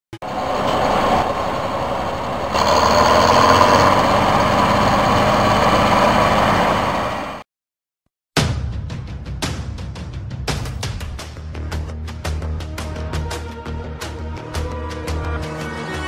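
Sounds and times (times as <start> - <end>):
combine harvester running: 0.2 - 7.4.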